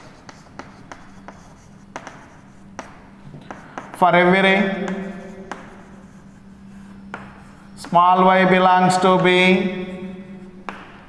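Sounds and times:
chalk tapping and scratching on board: 0:00.0 - 0:11.0.

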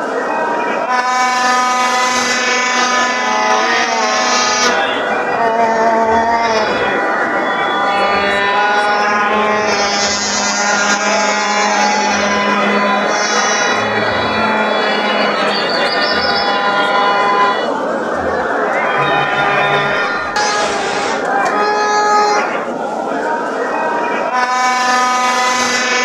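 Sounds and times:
crowd chatter: 0:00.0 - 0:26.0
vuvuzelas blowing held notes: 0:00.4 - 0:23.2, 0:23.9 - 0:26.0.

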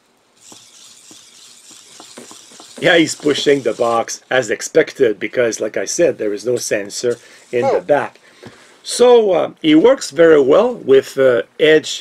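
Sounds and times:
small motors whirring: 0:00.3 - 0:04.6, 0:07.0 - 0:08.0.

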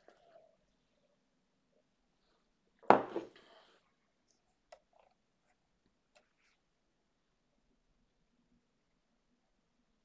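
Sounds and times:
mug clunking on desk: 0:02.9 - 0:03.3.

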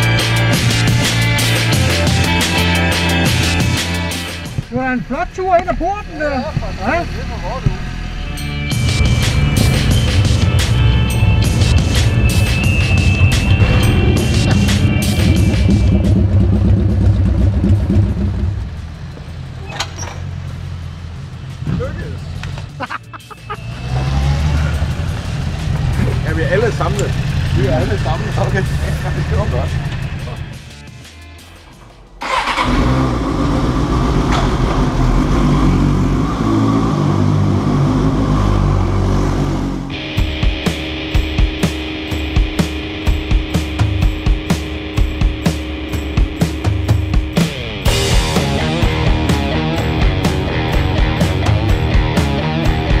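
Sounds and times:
music with drumbeat: 0:00.0 - 0:04.7, 0:08.7 - 0:18.9, 0:39.9 - 0:53.0
motorcycle engine running: 0:05.5 - 0:19.6, 0:24.4 - 0:31.0, 0:37.1 - 0:53.0.

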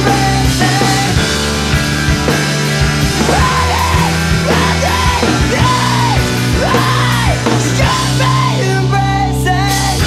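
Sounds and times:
bass and guitars sustained chords: 0:00.0 - 0:10.0
person yelling vocals: 0:03.2 - 0:10.0.

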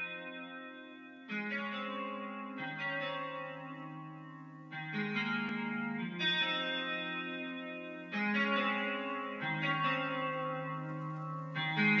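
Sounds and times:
sustained guitar chords: 0:00.0 - 0:12.0.

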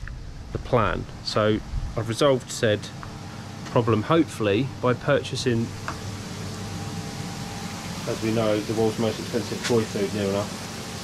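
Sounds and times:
pond filtration equipment humming: 0:00.0 - 0:11.0.

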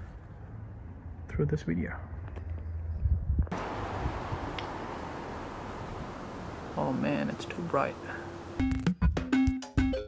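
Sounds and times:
wind rumble on microphone: 0:02.4 - 0:06.8
steady hiss: 0:03.6 - 0:08.6.

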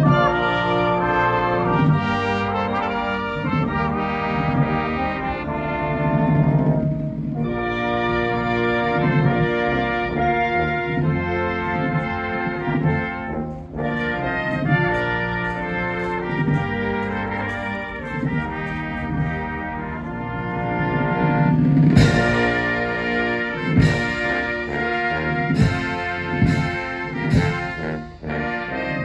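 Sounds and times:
brass band playing: 0:00.0 - 0:29.0
loud percussion strikes: 0:21.8 - 0:28.1.

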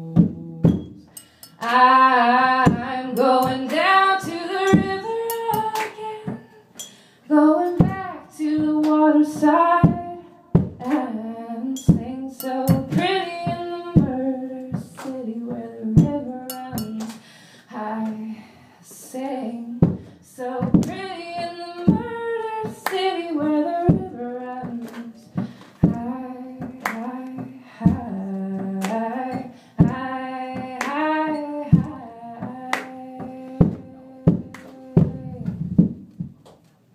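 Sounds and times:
woman singing: 0:00.0 - 0:06.7, 0:07.3 - 0:36.0.

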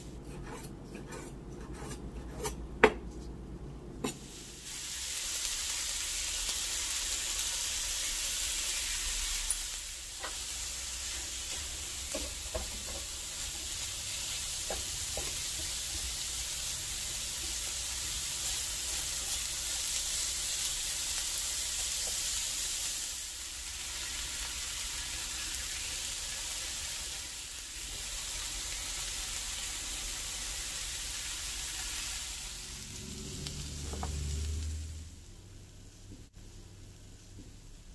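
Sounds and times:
spatula stirring: 0:00.2 - 0:02.6
food sizzling in a pan: 0:04.0 - 0:37.9.

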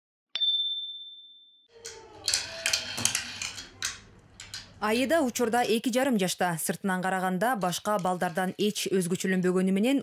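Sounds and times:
bright electronic ding: 0:00.4 - 0:01.7.

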